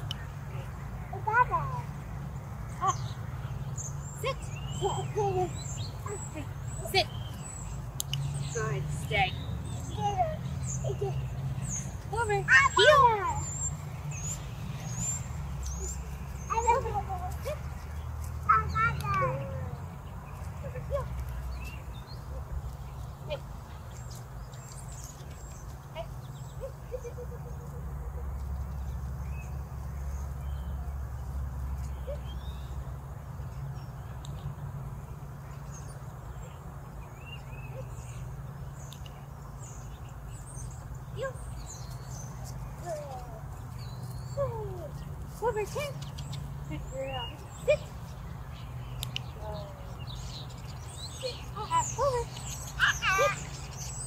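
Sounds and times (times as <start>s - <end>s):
birds chirping: 0.0s - 54.0s.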